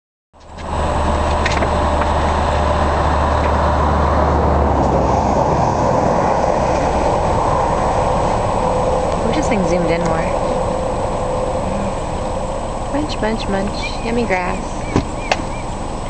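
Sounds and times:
deep low hum: 0.4s - 16.0s
vehicle engine idling: 0.4s - 16.0s.

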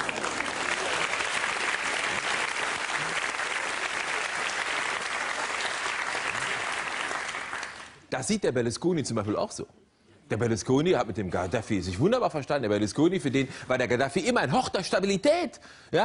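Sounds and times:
audience applauding: 0.0s - 8.1s.

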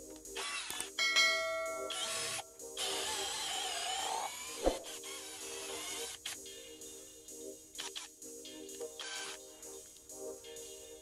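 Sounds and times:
background music: 0.0s - 11.0s
cordless drill boring into wood: 0.4s - 0.9s, 1.9s - 6.2s
notification chime: 1.0s - 2.3s.

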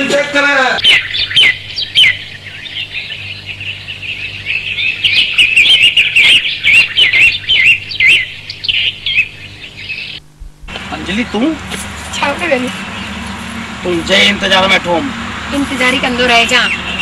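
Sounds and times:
songbirds chirping: 0.0s - 17.0s
steady low hum: 0.0s - 17.0s.

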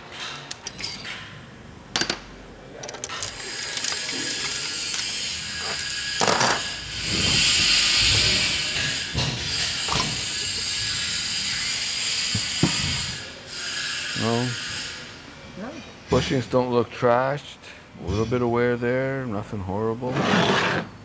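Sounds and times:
metal parts clicking and clunking: 0.0s - 1.3s, 2.8s - 7.4s.

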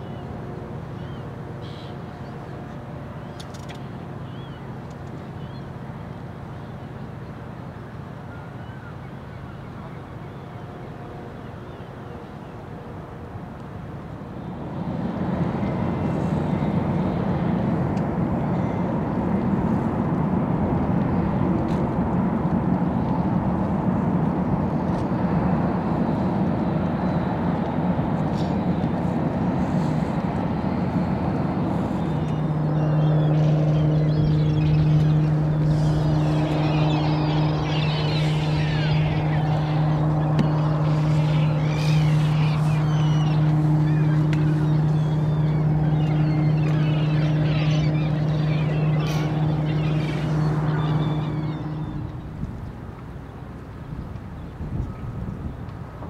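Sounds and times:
ship engines droning: 0.0s - 56.0s
birds calling: 30.6s - 54.6s.

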